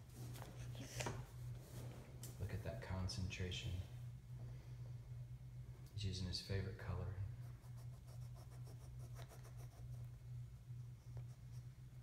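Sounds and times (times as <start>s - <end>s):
steady low hum: 0.0s - 12.0s
crayon scribbling on paper: 7.4s - 10.1s.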